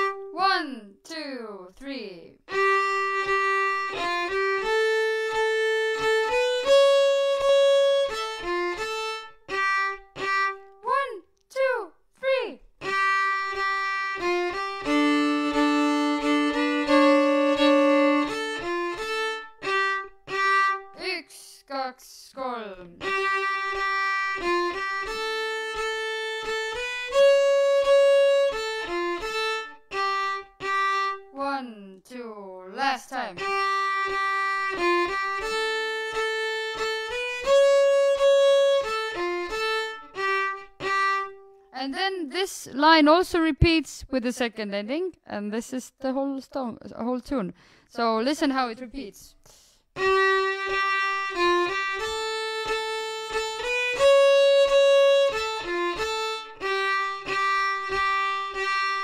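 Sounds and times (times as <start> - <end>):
solo fiddle playing folk tune: 0.0 - 0.6, 2.4 - 10.9, 12.7 - 21.5, 22.8 - 31.7, 32.8 - 42.1, 49.5 - 59.0.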